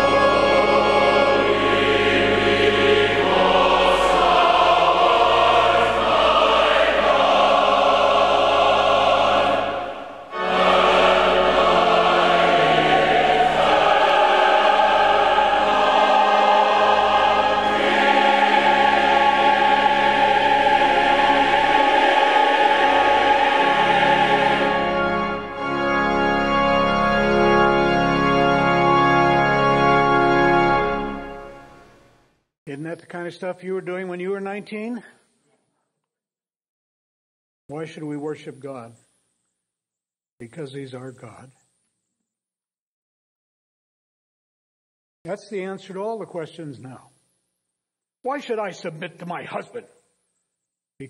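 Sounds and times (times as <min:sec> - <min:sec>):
church choir singing: 0:00.0 - 0:32.0
pipe organ bass notes: 0:00.0 - 0:32.1.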